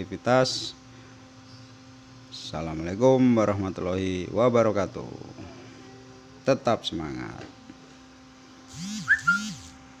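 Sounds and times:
faint steady hum: 0.0s - 10.0s
swooping whistle-like sound: 8.8s - 9.7s.

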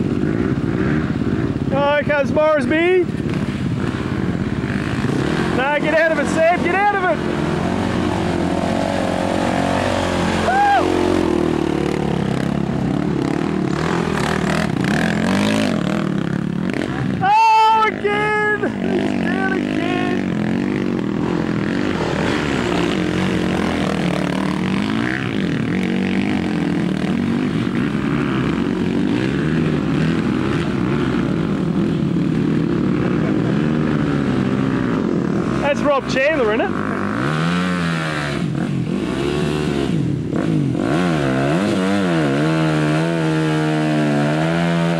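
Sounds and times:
dirt bike engines revving: 0.0s - 44.9s
person shouting: 10.3s - 11.2s, 17.2s - 20.2s.

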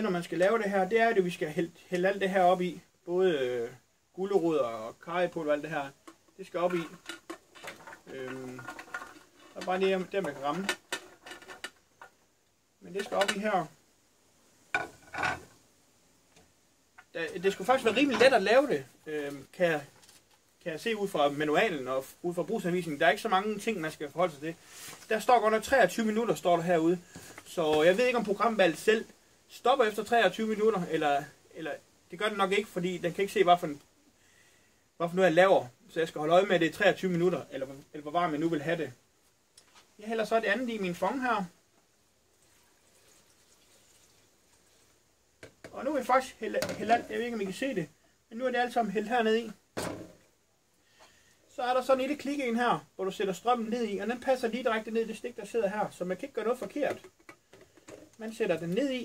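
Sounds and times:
liquid pouring into metal jug: 42.3s - 44.9s.

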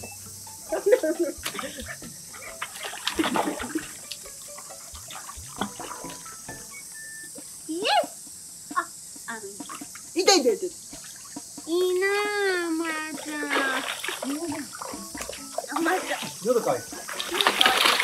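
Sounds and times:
water sloshing and splashing: 1.3s - 6.7s, 9.6s - 10.2s, 10.8s - 18.0s.

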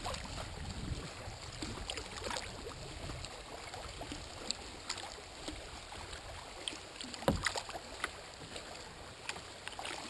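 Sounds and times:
water lapping against kayak: 0.0s - 10.0s.

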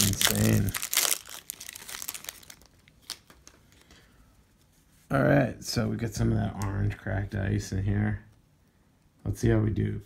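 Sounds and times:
plastic wrapper crinkling: 0.0s - 4.0s.

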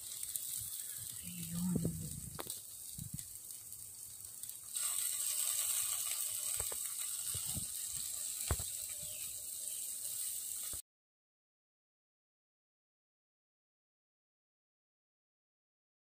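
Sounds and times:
meat sizzling on a grill: 0.0s - 10.8s
fat popping: 1.2s - 3.3s.

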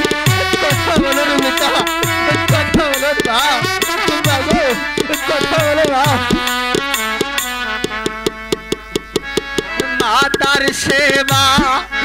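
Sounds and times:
held instrumental notes: 0.0s - 12.0s.

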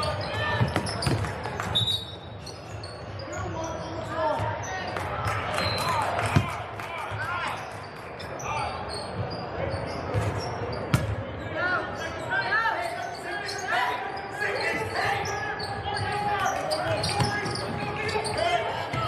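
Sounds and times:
sneakers squeaking: 0.0s - 4.9s, 7.5s - 19.0s
voices of players and spectators: 0.0s - 19.0s
referee's whistle: 1.8s - 3.3s, 5.6s - 6.0s.

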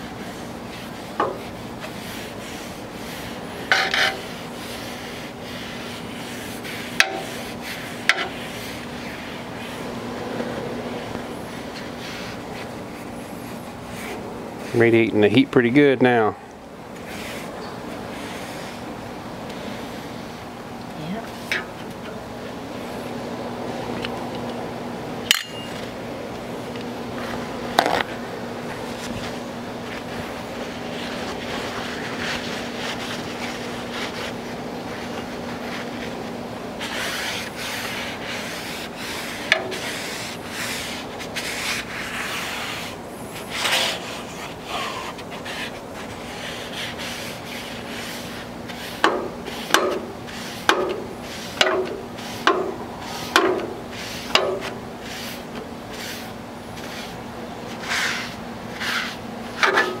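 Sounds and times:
paper towel wiping hot griddle: 0.0s - 10.0s, 10.8s - 15.8s, 17.0s - 19.0s, 28.7s - 60.0s
low steady hum: 0.0s - 60.0s.

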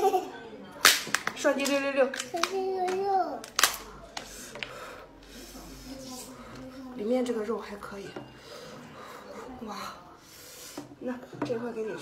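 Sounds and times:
lobster shell cracking: 0.8s - 3.9s.

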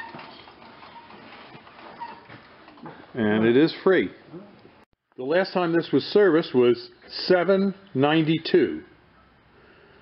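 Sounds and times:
tractor drivetrain clicking: 0.0s - 3.1s.

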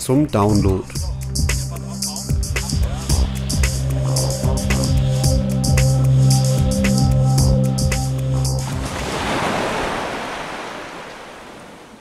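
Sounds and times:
background music: 0.0s - 9.0s
sea waves rushing: 8.6s - 12.0s
wind on the sea: 8.6s - 12.0s.

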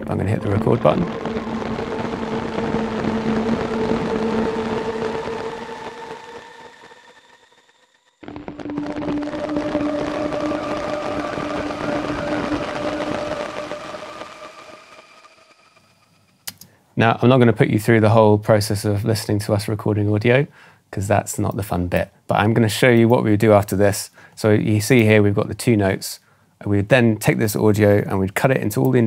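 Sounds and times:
grainy synth pad notes: 0.0s - 16.5s.

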